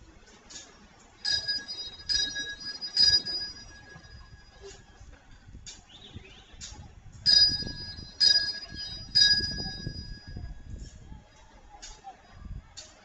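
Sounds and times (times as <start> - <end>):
altar bells ringing: 1.2 - 4.8, 7.3 - 10.5.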